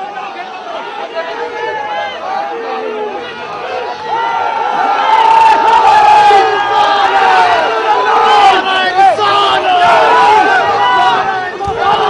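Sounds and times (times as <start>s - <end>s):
crowd shouting loudly: 0.0s - 12.0s.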